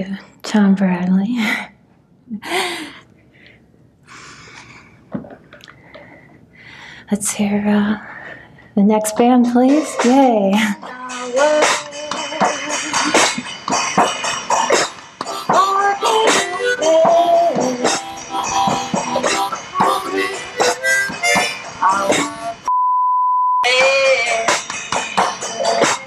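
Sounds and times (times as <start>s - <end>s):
harmonica playing: 15.2s - 22.7s.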